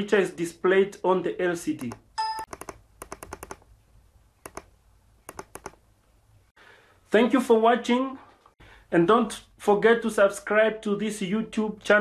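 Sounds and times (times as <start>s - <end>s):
computer mouse clicking: 1.8s - 3.6s, 4.4s - 4.7s, 5.3s - 5.8s.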